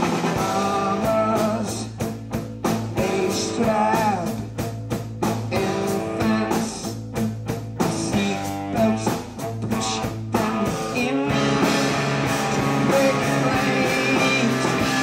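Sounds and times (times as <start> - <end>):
man singing into microphone: 0.0 - 2.0, 3.0 - 4.5, 5.5 - 6.9, 7.9 - 11.6, 12.5 - 15.0
drums: 0.0 - 15.0
guitar: 0.0 - 15.0.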